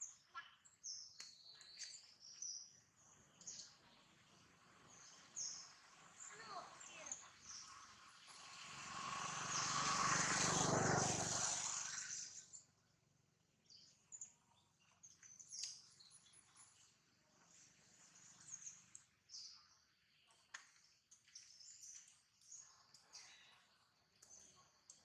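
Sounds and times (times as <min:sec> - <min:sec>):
faint bird chirps: 0:00.0 - 0:08.6, 0:13.6 - 0:25.0
broad rushing noise: 0:07.9 - 0:12.4.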